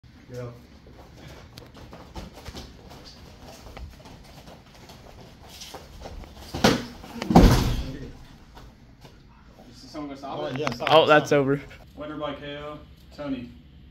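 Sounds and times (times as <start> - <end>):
thumps on floor mats: 6.0 - 8.0.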